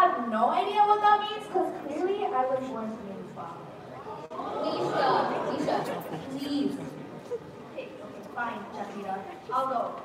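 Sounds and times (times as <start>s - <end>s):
audience chatter echoing in hall: 0.0s - 10.0s.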